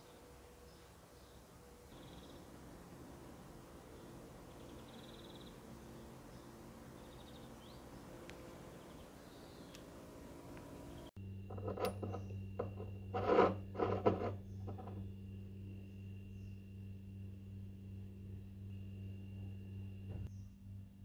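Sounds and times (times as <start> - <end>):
steady hum: 0.1 - 21.0.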